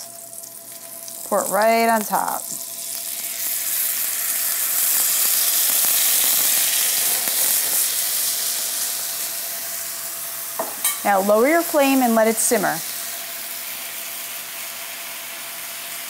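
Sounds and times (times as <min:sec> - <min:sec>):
sauce sizzling in a hot pan: 0:00.0 - 0:16.0.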